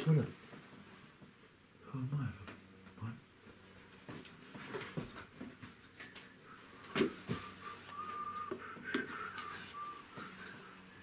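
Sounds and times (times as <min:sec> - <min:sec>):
soft whistling: 0:06.0 - 0:11.0.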